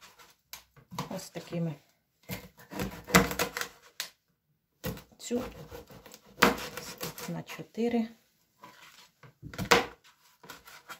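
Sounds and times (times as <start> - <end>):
knife chopping on plastic board: 2.3 - 3.7, 4.8 - 7.3, 9.4 - 10.9.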